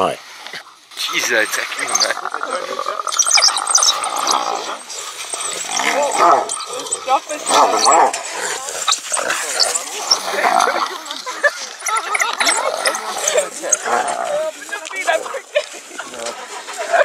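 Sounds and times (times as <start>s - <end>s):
wild dogs twittering and chattering: 0.0s - 17.0s
hyena yelping and growling: 1.8s - 11.0s.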